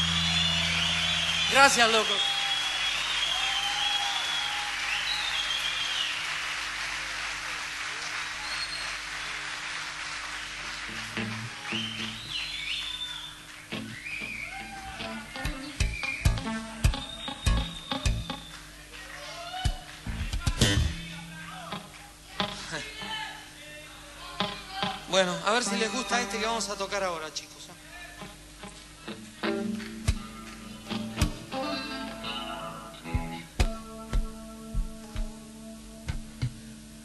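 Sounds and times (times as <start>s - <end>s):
whistles from crowd: 0.0s - 6.3s, 8.4s - 9.1s, 11.7s - 18.7s
audience applause: 0.0s - 15.2s
knocks and taps: 33.6s - 35.4s.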